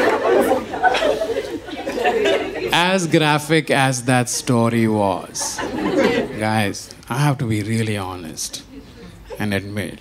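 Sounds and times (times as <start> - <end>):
audience laughing and chattering: 0.0 - 10.0.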